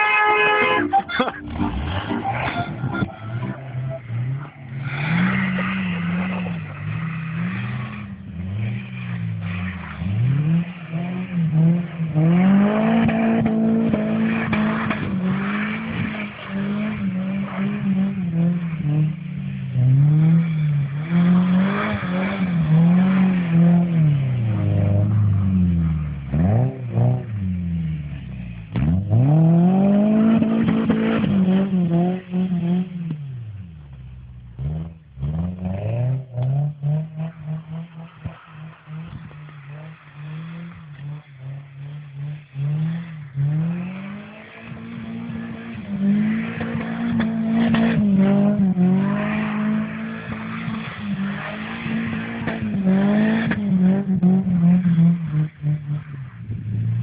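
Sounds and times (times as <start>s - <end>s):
car engine revving: 0.0s - 57.0s.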